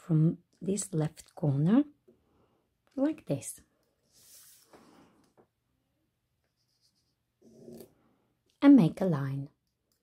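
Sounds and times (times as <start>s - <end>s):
pen scratching on paper: 6.5s - 7.9s.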